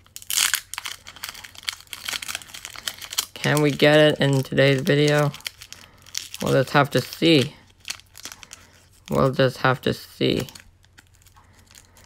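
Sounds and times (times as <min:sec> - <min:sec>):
foil wrapper crinkling: 0:00.0 - 0:12.0.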